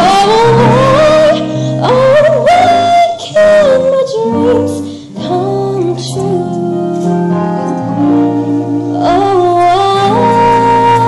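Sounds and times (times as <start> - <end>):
person singing a slow ballad: 0.0 - 11.0.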